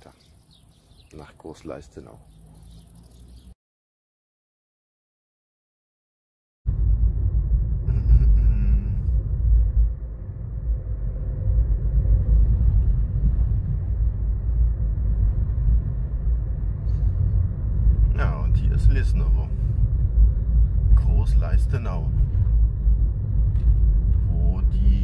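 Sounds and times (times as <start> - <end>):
car driving on asphalt: 0.3 - 3.6, 6.7 - 25.0.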